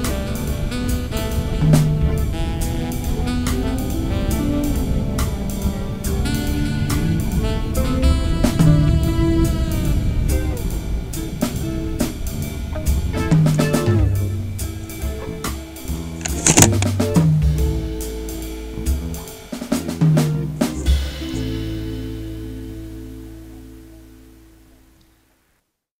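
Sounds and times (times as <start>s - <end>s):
drum kit: 0.0s - 23.8s
bass line: 0.0s - 25.0s.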